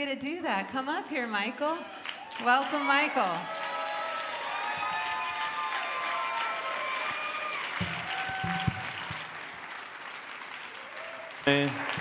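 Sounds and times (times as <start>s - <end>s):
congregation applauding: 1.8s - 12.0s
low thumps: 7.8s - 9.5s.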